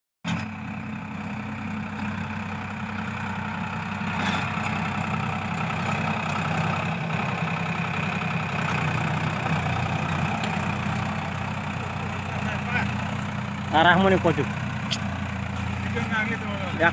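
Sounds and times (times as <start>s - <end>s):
tractor engine running under load: 0.3s - 16.9s.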